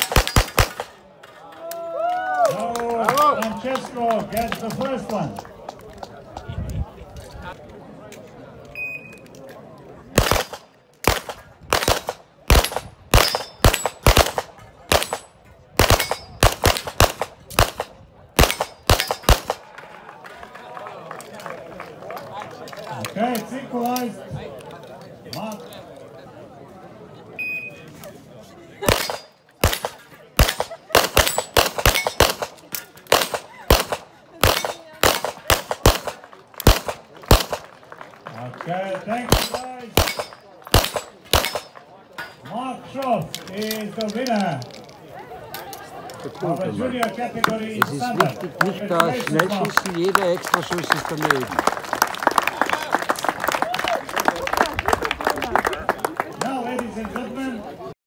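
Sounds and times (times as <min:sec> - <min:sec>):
rapid handgun shots: 0:00.0 - 0:01.0, 0:10.2 - 0:19.6, 0:28.9 - 0:37.7, 0:39.3 - 0:41.8.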